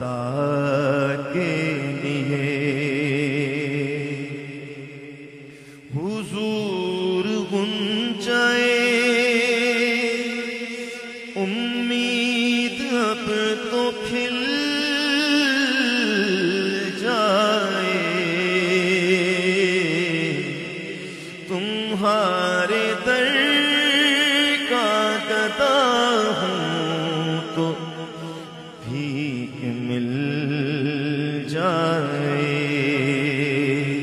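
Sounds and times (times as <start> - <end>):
man chanting: 0.0 - 34.0
man singing wordless melody: 0.0 - 34.0.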